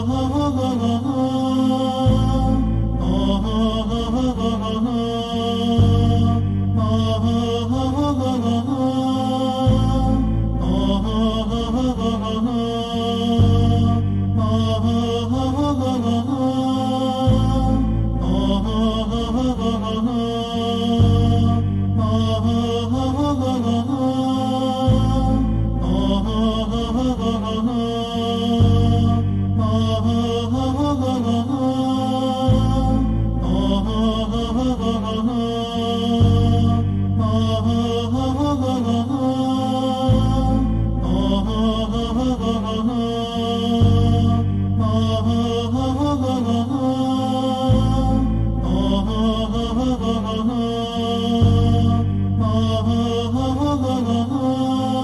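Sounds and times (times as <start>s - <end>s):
chanted vocal line: 0.0s - 55.0s
low steady musical backing: 0.0s - 55.0s.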